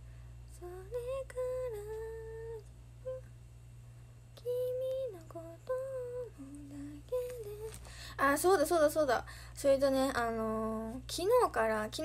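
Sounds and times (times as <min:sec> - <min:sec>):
woman humming softly: 0:00.6 - 0:03.4.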